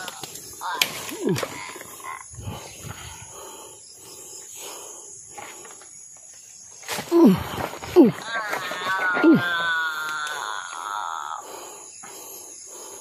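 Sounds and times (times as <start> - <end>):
animal-like moaning: 7.1 - 11.4.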